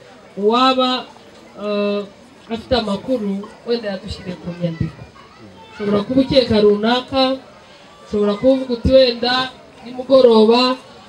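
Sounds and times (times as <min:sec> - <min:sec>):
crowd voices: 0:00.0 - 0:11.0
woman talking into microphone: 0:01.6 - 0:05.0, 0:05.8 - 0:07.4.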